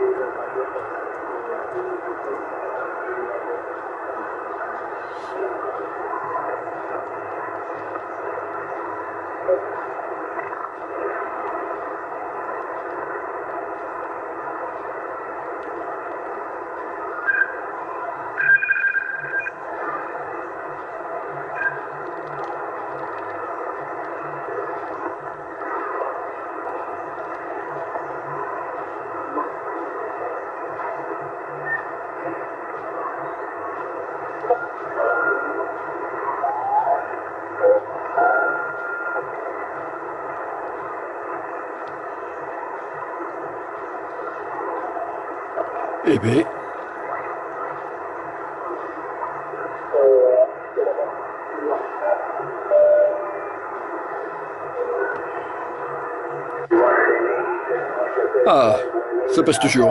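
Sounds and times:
radio static: 0.0s - 27.6s, 32.2s - 39.7s, 46.1s - 46.5s, 56.6s - 59.9s
radio whistles and distorted signals: 14.2s - 46.4s, 48.6s - 59.9s.

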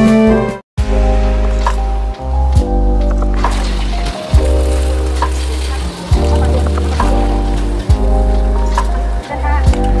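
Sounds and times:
background music with deep bass: 0.0s - 10.0s
egg sizzling in a pan: 3.4s - 7.8s.

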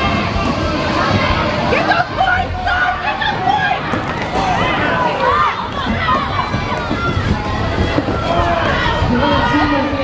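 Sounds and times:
crowd voices and shouting: 0.0s - 10.0s
roller skate wheels rumbling: 3.2s - 10.0s.

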